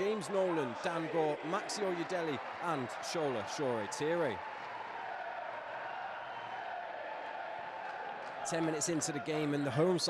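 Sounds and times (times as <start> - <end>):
football crowd cheering: 0.0 - 10.0.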